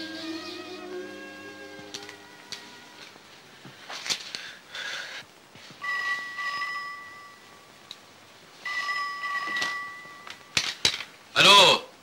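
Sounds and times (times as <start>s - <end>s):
telephone ringing: 5.8s - 7.6s, 8.6s - 10.5s.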